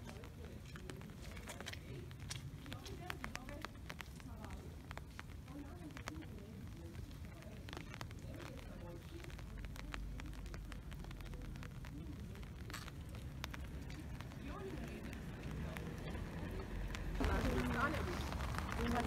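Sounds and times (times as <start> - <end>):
faint clicks: 0.0 - 19.0
people talking: 0.0 - 19.0
steady low rumble: 0.0 - 19.0.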